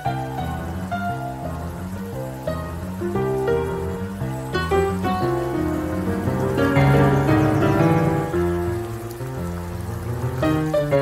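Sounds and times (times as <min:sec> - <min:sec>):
boogie-woogie piano: 0:00.0 - 0:11.0.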